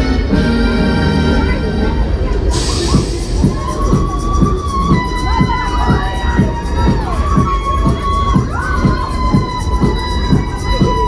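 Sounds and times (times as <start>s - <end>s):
loud ride music with steady beat: 0.0s - 11.0s
riders screaming and cheering: 2.6s - 11.0s.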